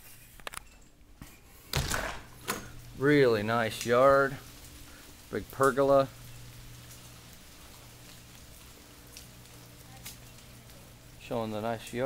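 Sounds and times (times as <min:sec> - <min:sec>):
light rain pattering and dripping: 0:00.4 - 0:12.0
low steady hum: 0:00.6 - 0:12.0.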